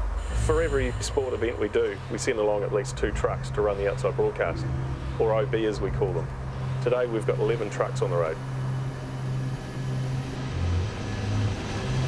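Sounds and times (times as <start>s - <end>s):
road hiss: 0.0s - 12.0s
truck engine drone: 0.0s - 12.0s.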